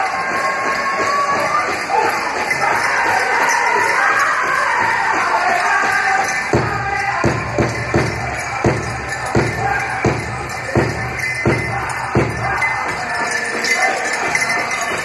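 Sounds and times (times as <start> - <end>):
big drum beats: 0.0 - 15.0
drum group singing: 0.0 - 15.0.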